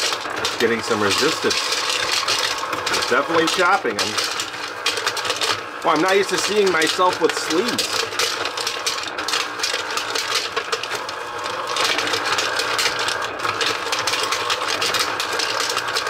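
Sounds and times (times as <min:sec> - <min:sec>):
hard candy crunching and rattling: 0:00.0 - 0:16.0
ice cream maker motor running: 0:00.0 - 0:16.0.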